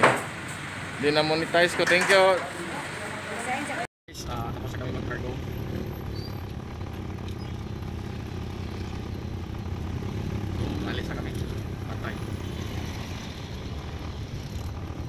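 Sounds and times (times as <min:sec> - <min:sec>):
motorcycles: 0:02.5 - 0:15.0
truck engine idling: 0:04.2 - 0:12.3.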